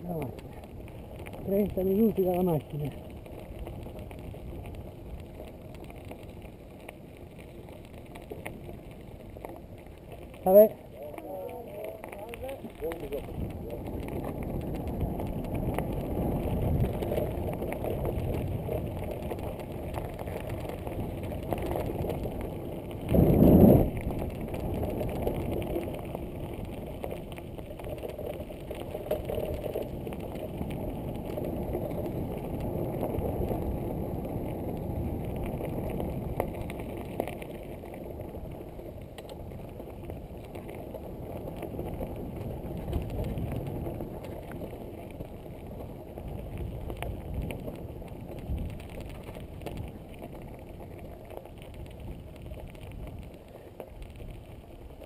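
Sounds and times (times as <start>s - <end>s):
bike rattling over bumps: 0.0s - 55.0s
bike tyres on gravel: 0.0s - 55.0s.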